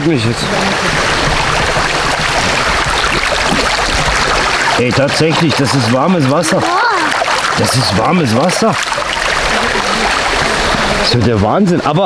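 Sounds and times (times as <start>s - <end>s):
brook running over pebbles: 0.2s - 11.1s.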